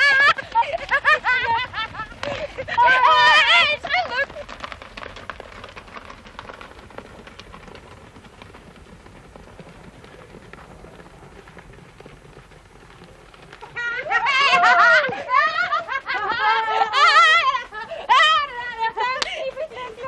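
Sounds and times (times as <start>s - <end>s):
faint scuffling: 0.0s - 20.0s.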